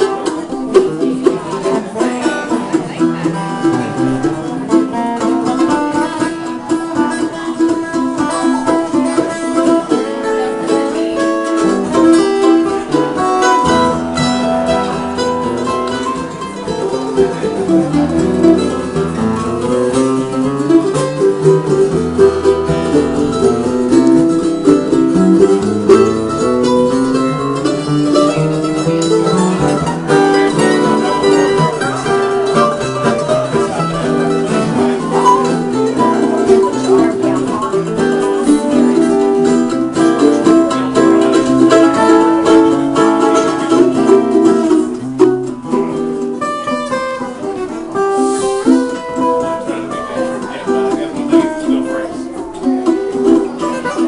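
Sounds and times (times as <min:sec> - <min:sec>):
acoustic guitar bluegrass picking: 0:00.0 - 0:54.0.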